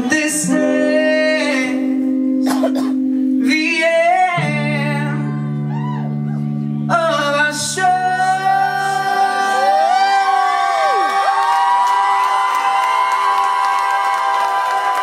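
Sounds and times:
crowd whooping and cheering: 0:05.6 - 0:06.5, 0:09.0 - 0:15.0.

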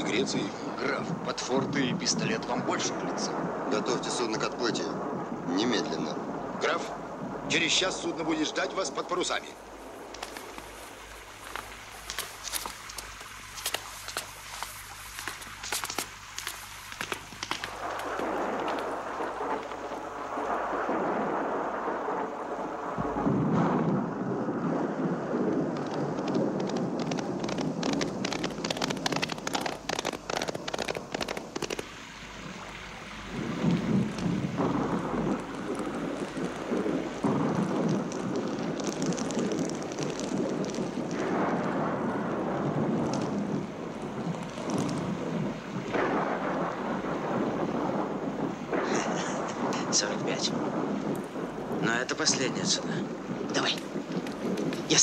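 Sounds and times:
heavy rain falling: 0:00.0 - 0:55.0
thunder rolling: 0:00.0 - 0:55.0.

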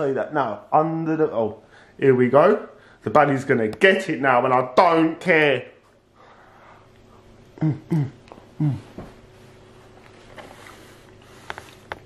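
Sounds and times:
faint chewing: 0:09.9 - 0:12.0.

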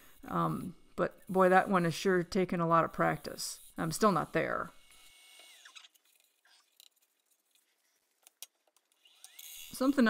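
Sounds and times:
woman speaking: 0:00.2 - 0:04.7, 0:09.8 - 0:10.0.

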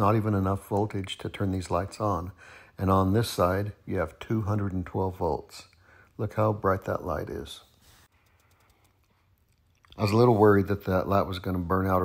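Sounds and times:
faint ticks: 0:08.1 - 0:10.0.

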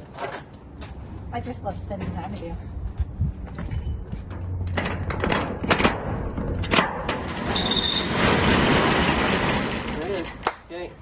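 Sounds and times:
metal roll-up door rattling: 0:04.7 - 0:10.4.

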